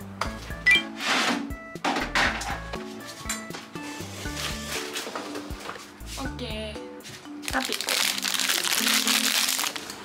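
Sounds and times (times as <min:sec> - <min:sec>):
background music: 0:00.0 - 0:10.0
plastic wrapper crinkling: 0:07.4 - 0:10.0.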